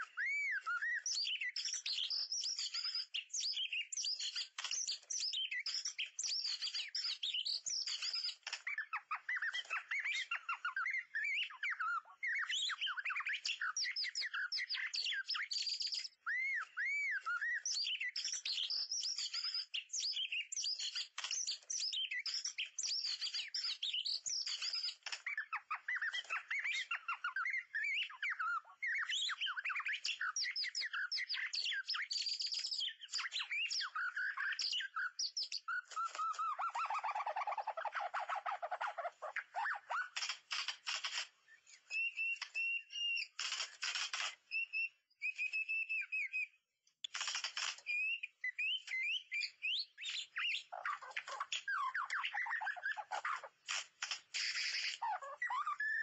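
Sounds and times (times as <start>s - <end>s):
bird whistling and trilling: 0.0s - 56.0s.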